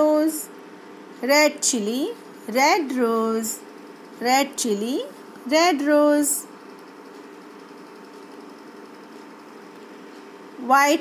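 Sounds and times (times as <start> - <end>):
faint background hum with tones: 0.0 - 11.0.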